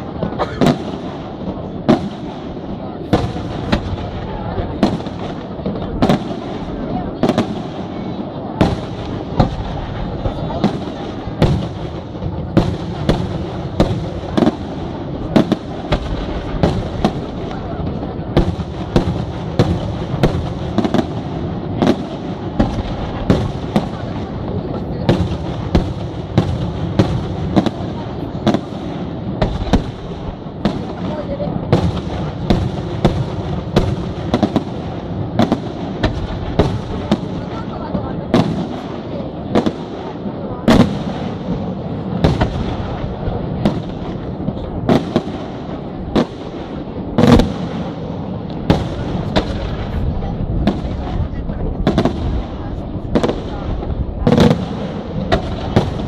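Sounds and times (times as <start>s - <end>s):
rumble of firework display: 0.0s - 56.0s.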